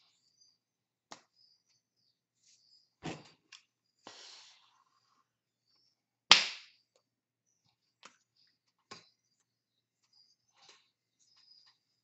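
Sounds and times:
hands slapping and tapping: 0:06.3 - 0:06.7.

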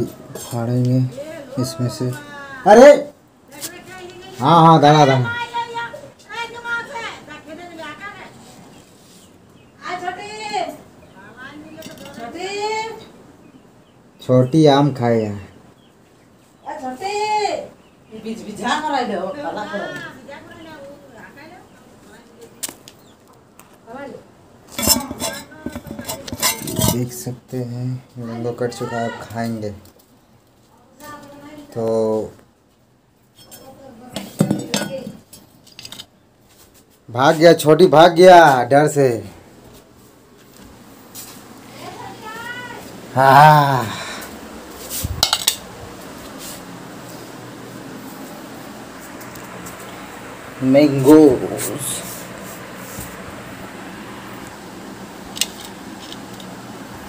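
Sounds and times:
low steady hiss: 0:00.0 - 0:57.0
knife scraping on steel plate: 0:24.7 - 0:27.2.

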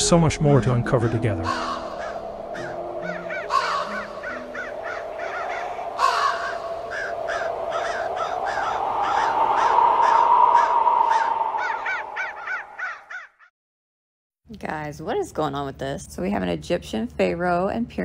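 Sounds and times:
steady droning tone: 0:00.0 - 0:12.8
crows cawing: 0:01.1 - 0:13.4.

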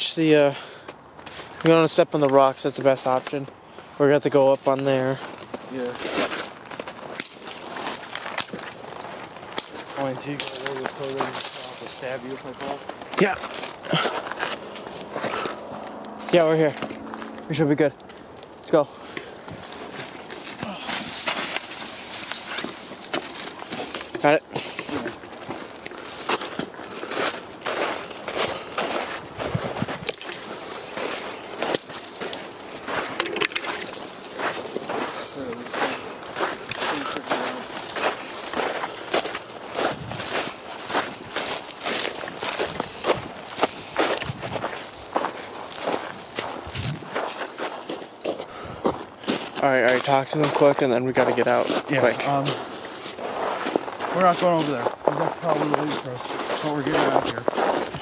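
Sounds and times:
footsteps crunching in snow: 0:02.6 - 0:58.0.

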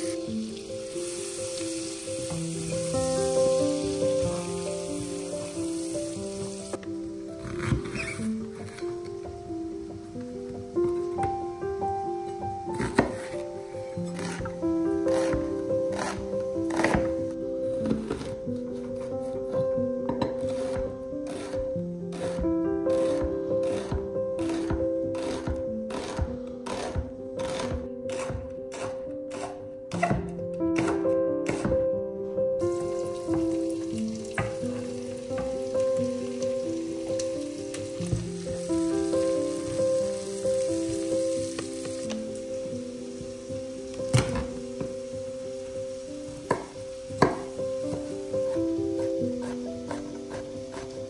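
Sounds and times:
vegetables sizzling in a pan: 0:00.0 - 0:06.8, 0:09.6 - 0:11.2, 0:15.1 - 0:18.3, 0:23.0 - 0:29.6, 0:32.6 - 0:51.0
background music with held notes: 0:00.0 - 0:51.0
knock: 0:46.5 - 0:47.5
wooden spatula stirring: 0:47.2 - 0:51.0.

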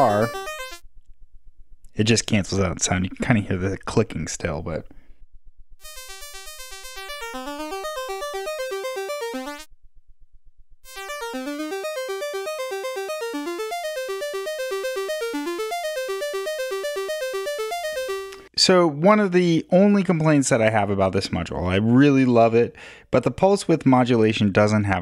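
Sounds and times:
analog oscillator pulse-wave notes: 0:05.8 - 0:09.7, 0:10.9 - 0:18.5.

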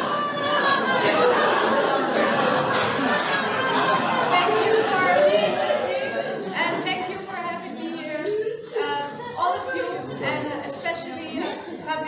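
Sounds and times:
crowd chattering: 0:00.0 - 0:12.0.

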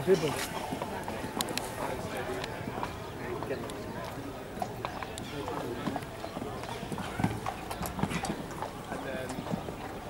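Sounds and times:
chatter of voices: 0:00.0 - 0:10.0
horse hoofbeats on sand: 0:00.0 - 0:10.0.

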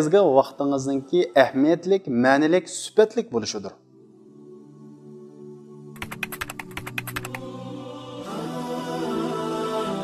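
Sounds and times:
soft background music: 0:00.0 - 0:10.0
keyboard typing clicks: 0:06.0 - 0:07.4.

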